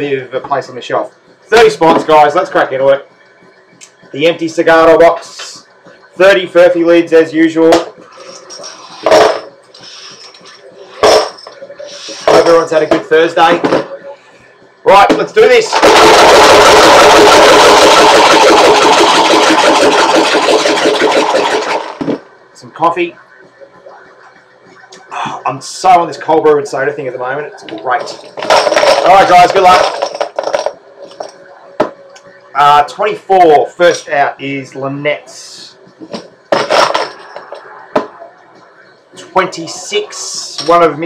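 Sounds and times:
lids rattling in shaken box: 17.8s - 22.0s, 28.4s - 30.7s.

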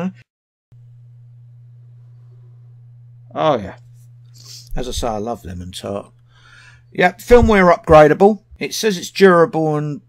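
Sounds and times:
low electrical hum: 0.8s - 10.0s.

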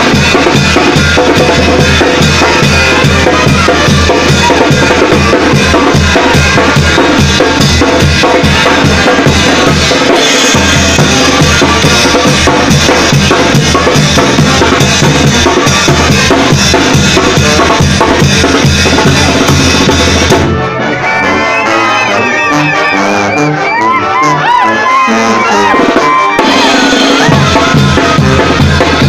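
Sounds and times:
brass band playing: 0.0s - 29.0s.

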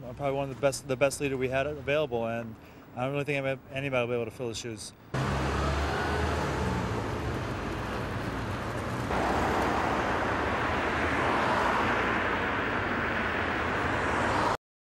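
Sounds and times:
road traffic passing: 5.0s - 14.6s.

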